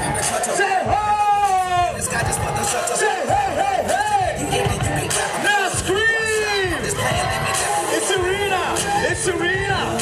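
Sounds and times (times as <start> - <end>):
audience shouting: 0.0 - 4.5, 5.2 - 10.0
dance music over loudspeakers: 0.0 - 10.0.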